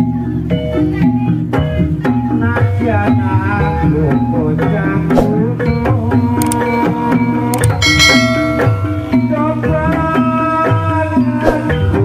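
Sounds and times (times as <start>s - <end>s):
drums: 0.0s - 12.0s
gamelan music: 7.6s - 10.0s
gongs: 7.7s - 9.9s.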